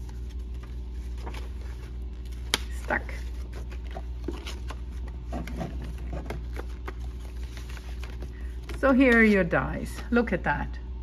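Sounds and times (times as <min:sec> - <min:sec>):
paper packaging rustling: 0:00.0 - 0:09.1
steady low hum: 0:00.0 - 0:11.0.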